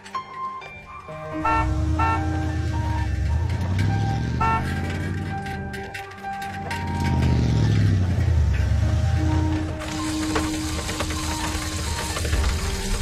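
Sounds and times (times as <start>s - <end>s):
light background music: 0.0s - 13.0s
vehicle engine rumbling: 0.9s - 13.0s.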